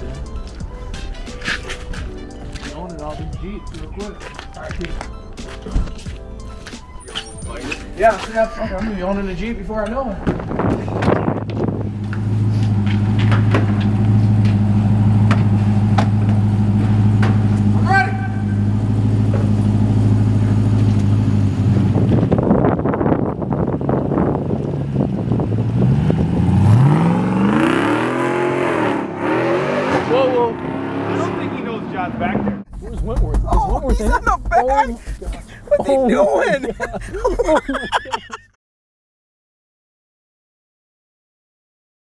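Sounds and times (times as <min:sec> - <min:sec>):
truck engine idling and revving: 0:10.2 - 0:35.8.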